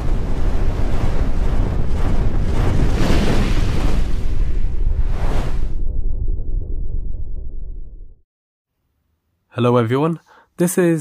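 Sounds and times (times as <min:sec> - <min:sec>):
deep rumble: 0:00.0 - 0:08.2
rushing whooshes: 0:00.7 - 0:05.9.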